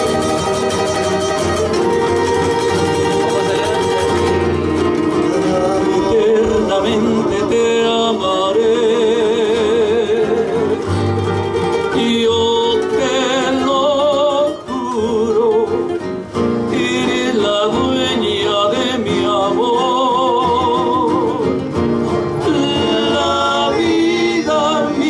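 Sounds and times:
acoustic guitars: 0.0 - 25.0
men singing in harmony: 1.9 - 11.1, 11.7 - 15.8, 16.6 - 25.0.

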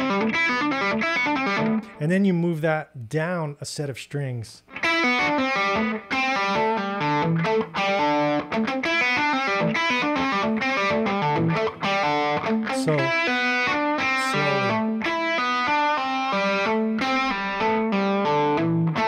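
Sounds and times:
distorted electric guitar lick: 0.0 - 2.0, 4.7 - 19.0.

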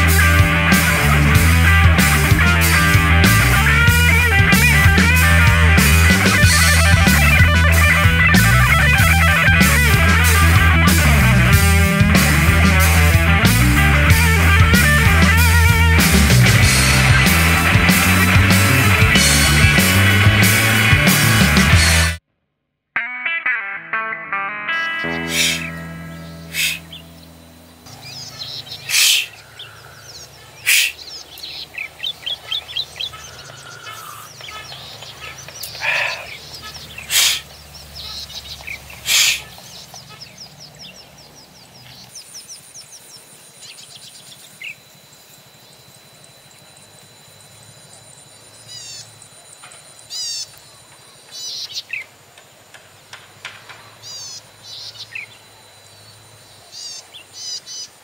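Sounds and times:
outdoor background noise: 0.0 - 58.0
small birds chirping: 24.7 - 58.0
faint thin high tone: 25.0 - 27.8.

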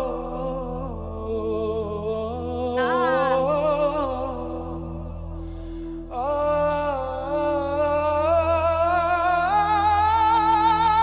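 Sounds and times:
man singing long note: 0.0 - 5.0
low steady drone: 0.0 - 11.0.

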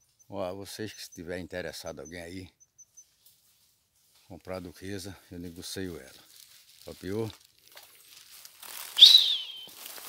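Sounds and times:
leaves and brush rustling: 2.4 - 10.0
high whistled note: 9.0 - 9.8.

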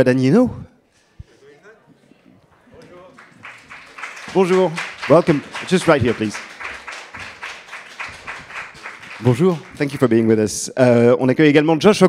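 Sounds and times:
audience applauding: 2.5 - 10.3.

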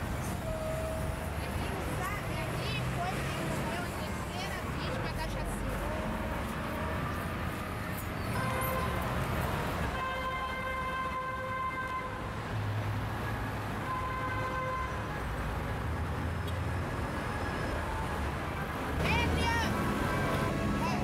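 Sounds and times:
highway traffic rumbling: 0.0 - 21.0
vehicle horn blasts: 8.3 - 9.0, 9.9 - 12.2, 13.8 - 15.0.

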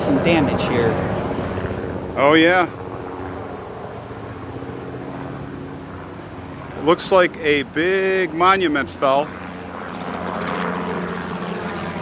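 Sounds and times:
helicopter drone: 0.0 - 12.0.

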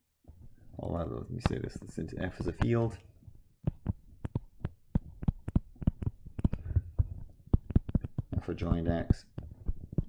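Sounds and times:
stylus tapping on tablet screen: 0.3 - 3.0, 3.6 - 10.0.

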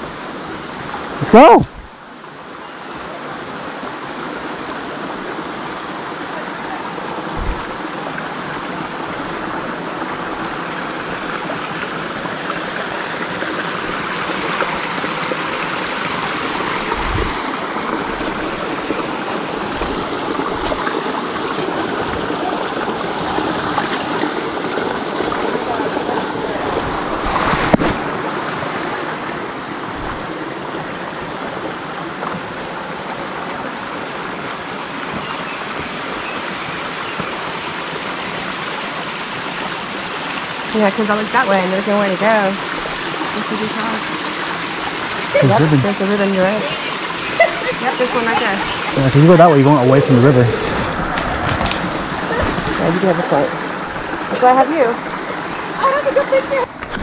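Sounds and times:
stream running over rocks: 0.0 - 57.0
low bumps: 7.3 - 7.8.

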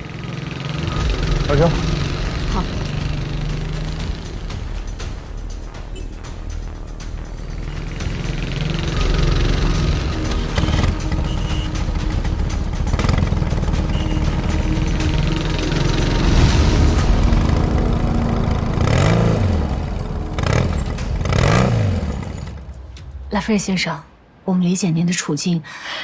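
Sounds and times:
motorcycle engines in traffic: 0.0 - 5.2, 7.4 - 16.3, 17.2 - 23.0
engines revving: 0.0 - 23.0
tense background music: 0.0 - 26.0.

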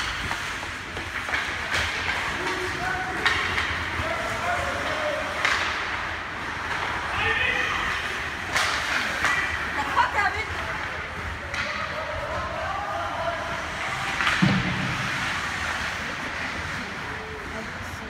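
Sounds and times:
hockey sticks knocking puck: 0.0 - 17.1
rink noise: 0.0 - 17.8.

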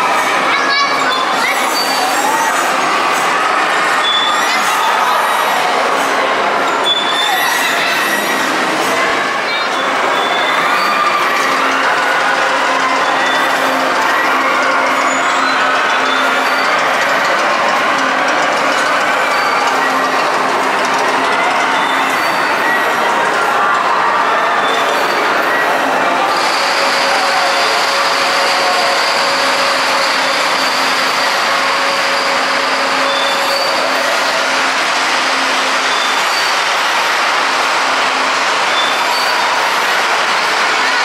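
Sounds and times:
ride machinery running: 0.0 - 41.0
short high squeals: 0.9 - 2.8, 3.9 - 5.8, 6.6 - 12.2, 24.6 - 36.8.

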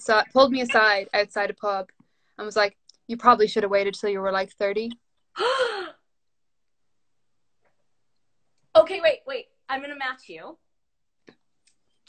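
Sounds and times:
woman gasping: 5.4 - 6.0.

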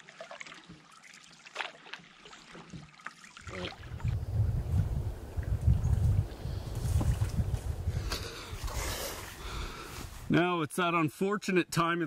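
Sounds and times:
wind buffeting microphone: 3.4 - 9.8.

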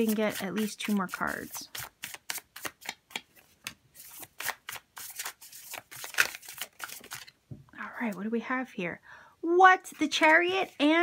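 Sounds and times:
cards being shuffled: 0.0 - 7.4.

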